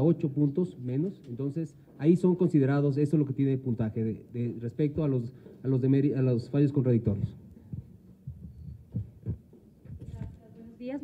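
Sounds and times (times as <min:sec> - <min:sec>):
microphone handling thumps: 0:07.0 - 0:10.4.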